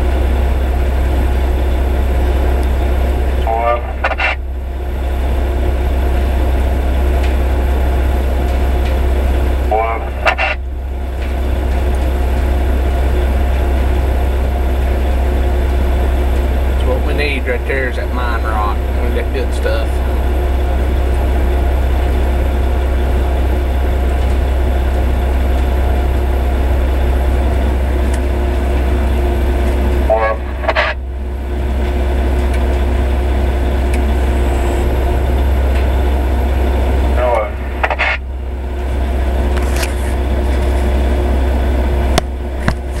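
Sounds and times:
truck diesel engine droning: 0.0s - 43.0s.

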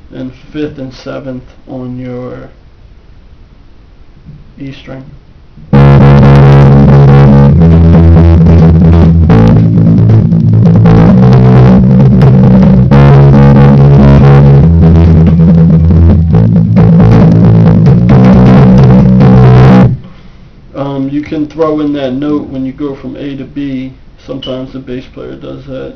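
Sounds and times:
electric bass guitar bassline: 5.6s - 23.2s.

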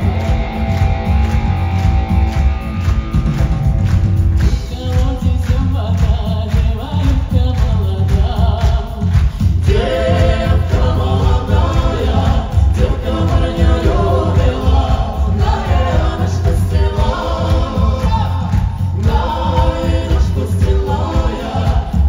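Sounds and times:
bass and drum beat: 0.0s - 22.0s
voices singing together: 4.8s - 22.0s.

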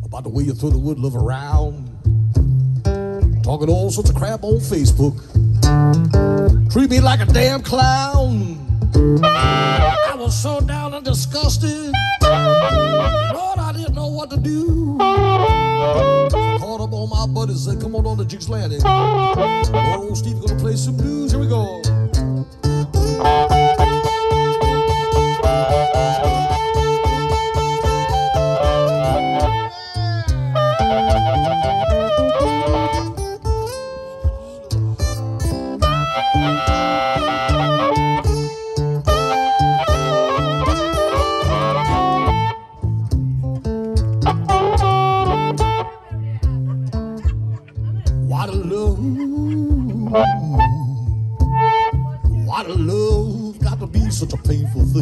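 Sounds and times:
acoustic guitar boogie rhythm: 0.0s - 55.0s
harmonica playing lead lines: 7.1s - 47.2s, 49.8s - 52.6s.

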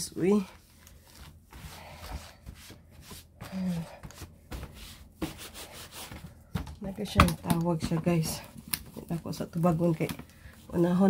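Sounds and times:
rubbing and scuffing: 0.6s - 6.6s.

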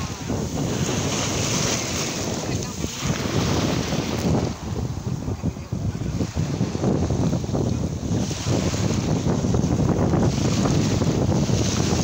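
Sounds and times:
small sea waves breaking: 0.0s - 12.0s
wind buffeting microphone: 0.0s - 12.0s.

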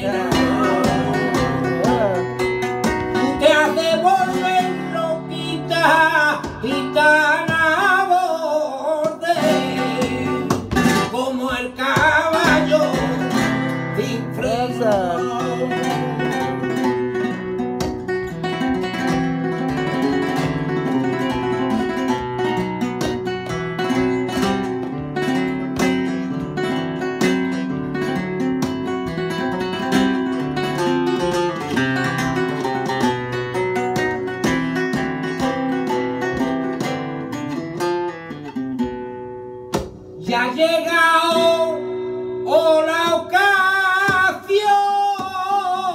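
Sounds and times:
person singing: 0.0s - 17.4s, 40.2s - 45.9s
flamenco guitar: 0.0s - 45.9s.

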